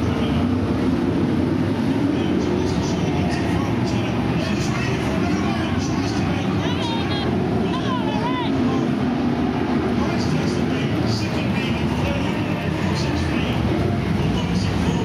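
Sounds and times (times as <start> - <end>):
racing car engines: 0.0 - 15.0.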